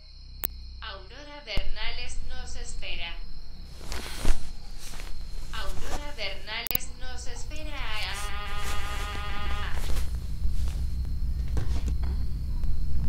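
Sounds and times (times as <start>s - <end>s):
high wavering voice: 5.5s - 9.9s.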